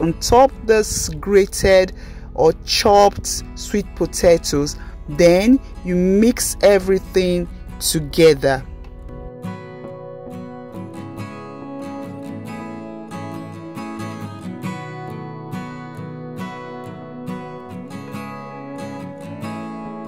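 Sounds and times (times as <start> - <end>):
acoustic guitar music: 0.0 - 20.0.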